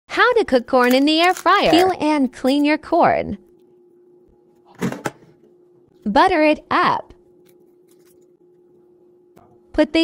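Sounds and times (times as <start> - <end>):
faint steady hum: 0.1 - 10.0.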